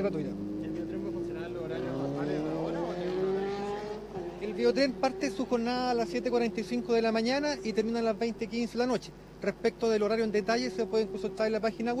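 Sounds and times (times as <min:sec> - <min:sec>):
vehicle accelerating with whine: 0:00.0 - 0:07.0.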